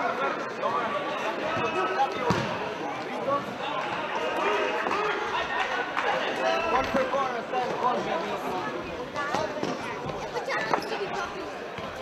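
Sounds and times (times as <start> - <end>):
spectators chatting: 0.0 - 12.0
ball thud on hall floor: 2.3 - 2.6.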